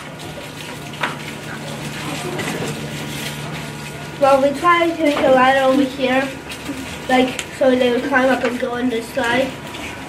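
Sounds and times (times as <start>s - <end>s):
steady low hum: 0.0s - 10.0s
children chattering: 1.6s - 3.0s, 4.0s - 9.6s.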